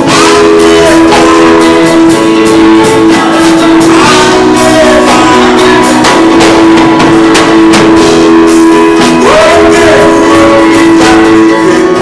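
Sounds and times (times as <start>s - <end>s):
drum kit and cymbals: 0.0s - 12.0s
guitar: 0.0s - 12.0s
live gospel band music: 0.0s - 12.0s
person singing: 0.0s - 12.0s.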